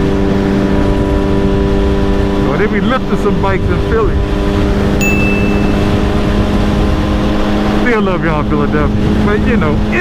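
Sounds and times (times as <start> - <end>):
heavy wind noise: 0.0 - 10.0
motorcycle engine cruising: 0.0 - 10.0
road noise: 0.0 - 10.0
brief high tone: 5.0 - 6.2.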